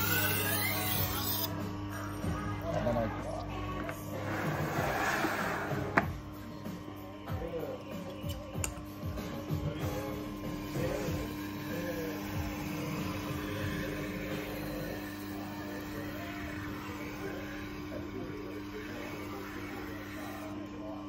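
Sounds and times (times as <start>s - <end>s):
motor humming: 0.0s - 21.0s.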